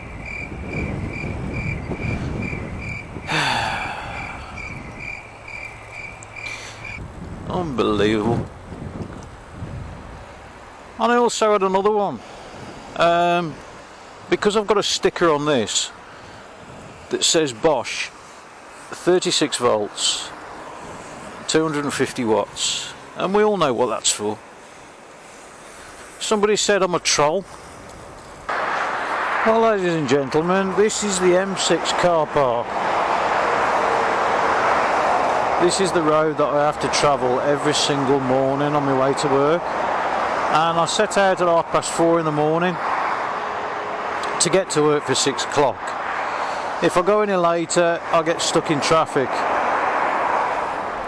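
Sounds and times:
wind on microphone: 0:00.0 - 0:05.2, 0:06.7 - 0:10.3
motorway traffic rushing: 0:00.0 - 0:51.0
bike tyres on tarmac: 0:12.2 - 0:51.0.

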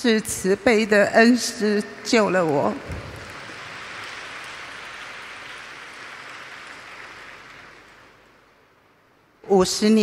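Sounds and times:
audience applauding: 0:02.6 - 0:08.4.

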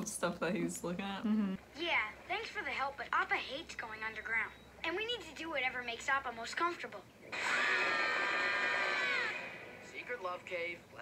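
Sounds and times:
cartoon characters screaming: 0:07.4 - 0:09.5.

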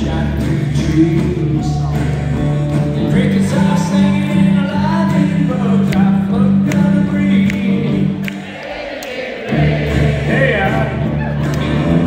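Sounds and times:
low bass line: 0:00.0 - 0:08.2
live country-rock band: 0:00.0 - 0:08.6, 0:09.4 - 0:12.0.

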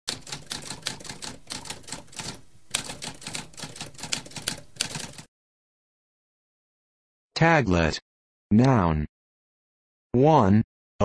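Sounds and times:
typewriter keys typing: 0:00.1 - 0:05.3.

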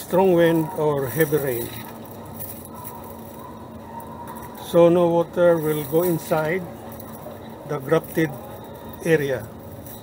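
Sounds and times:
steady background noise: 0:00.0 - 0:10.0
plastic tape rustling: 0:00.6 - 0:04.6.

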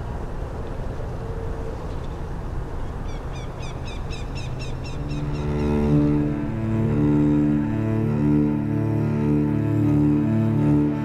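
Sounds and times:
low outdoor rumble: 0:00.0 - 0:11.0
bird chirping: 0:03.0 - 0:06.8
bowed string music: 0:04.4 - 0:11.0.

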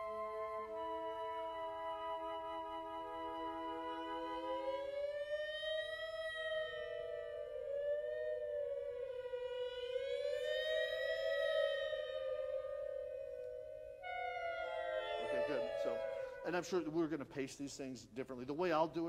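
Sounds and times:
wind ensemble playing sliding notes: 0:00.0 - 0:05.0, 0:14.0 - 0:17.4.

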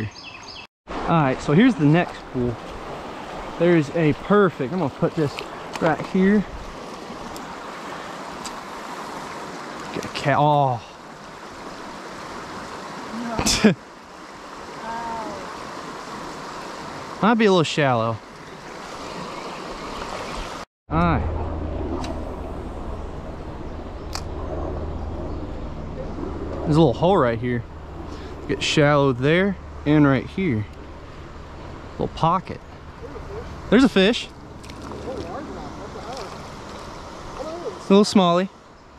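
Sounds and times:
creek water running over gravel: 0:01.0 - 0:20.6, 0:33.1 - 0:38.5
sharp click: 0:24.1 - 0:24.3.

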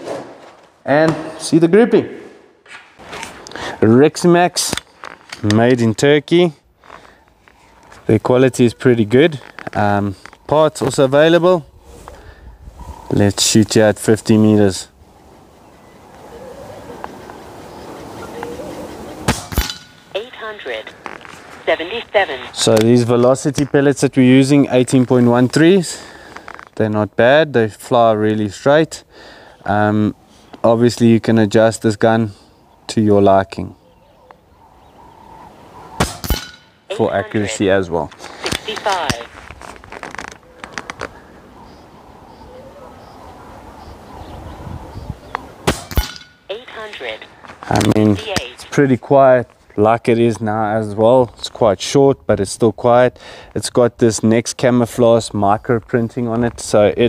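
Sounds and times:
air rifle shot crack: 0:19.2 - 0:20.1, 0:36.0 - 0:36.7, 0:45.6 - 0:46.3
pellet striking steel target: 0:19.3 - 0:20.1, 0:36.0 - 0:36.8, 0:45.7 - 0:46.5
person speaking: 0:20.1 - 0:25.9, 0:36.9 - 0:39.4, 0:46.5 - 0:49.2.

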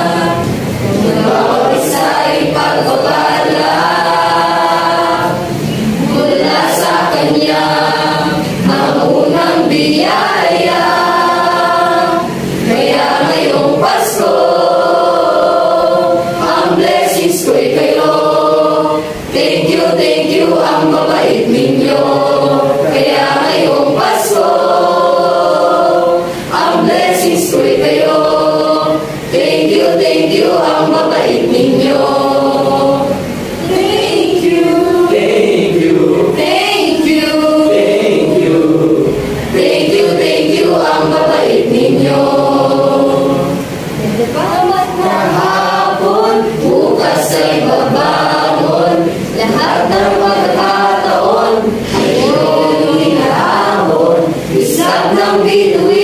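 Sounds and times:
mixed choir singing: 0:00.0 - 0:56.0.

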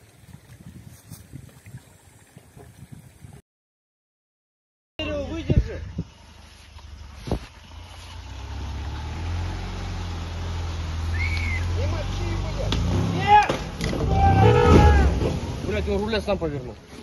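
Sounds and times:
off-road vehicle engine revving: 0:05.9 - 0:16.4
men calling out: 0:13.1 - 0:15.4.

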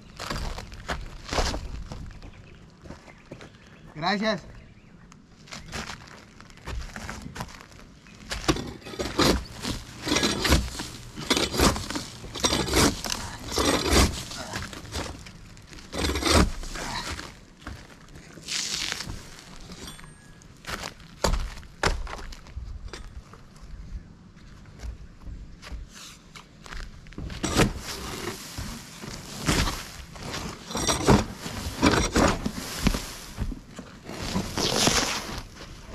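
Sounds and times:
gravel crunching: 0:00.0 - 0:35.9
shovel scraping roof: 0:08.3 - 0:21.5, 0:27.2 - 0:35.9.

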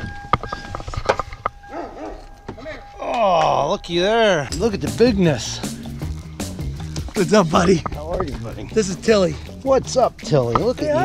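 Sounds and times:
big dog barking: 0:01.7 - 0:02.3.

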